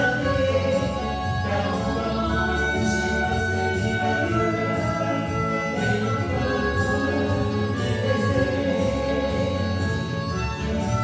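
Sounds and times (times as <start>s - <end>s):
electric guitar accompaniment: 0.0s - 11.0s
harmonica long notes: 0.0s - 11.0s.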